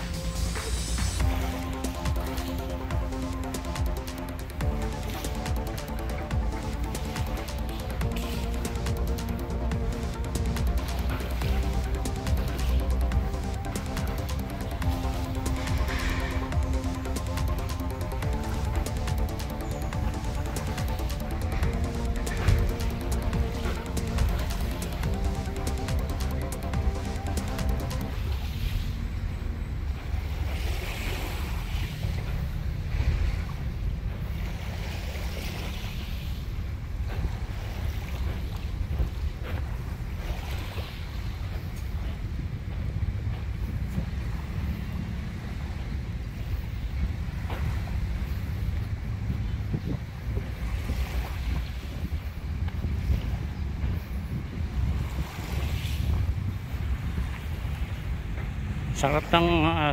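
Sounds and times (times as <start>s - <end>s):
waves washing onto sand: 0.0s - 59.9s
wind on microphone: 0.0s - 59.9s.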